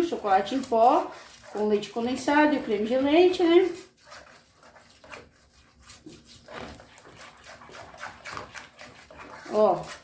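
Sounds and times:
whisk beating thick mixture in pan: 0.0 - 10.0.

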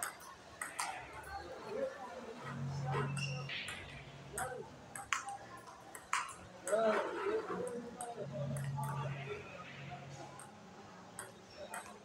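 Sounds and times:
table tennis ball clicking: 4.4 - 6.8, 11.2 - 12.0.

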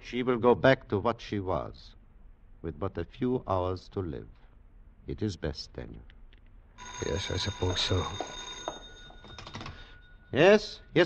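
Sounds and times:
telephone bell ringing: 6.8 - 10.9.

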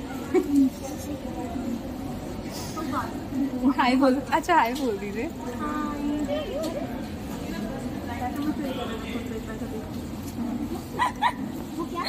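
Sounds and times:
low chatter of people: 0.0 - 12.0.

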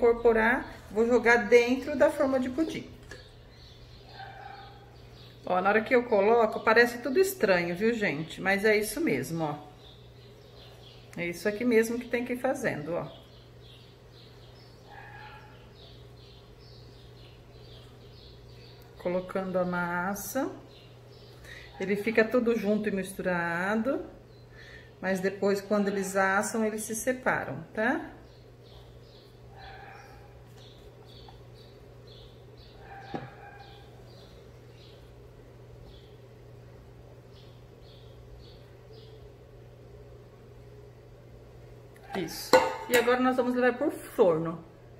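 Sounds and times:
faint bird chirping: 0.0 - 44.9.

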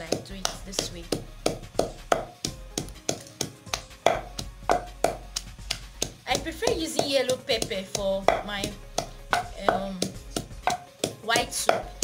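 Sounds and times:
pestle pounding in mortar: 0.0 - 12.0.

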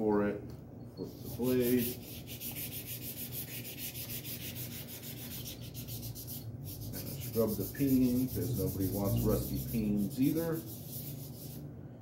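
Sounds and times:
sandpaper scrubbing on steel: 1.1 - 11.6.

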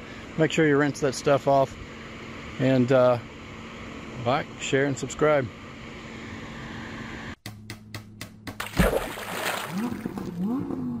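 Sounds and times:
loud splash: 8.6 - 10.4
underwater rush: 8.8 - 10.4.

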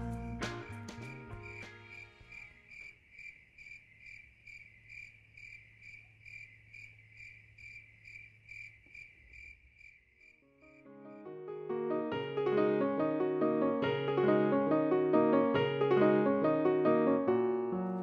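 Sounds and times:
piano music: 0.0 - 2.4, 10.7 - 18.0
music: 0.0 - 2.6, 10.7 - 18.0
faint cricket chirping: 0.0 - 11.4.

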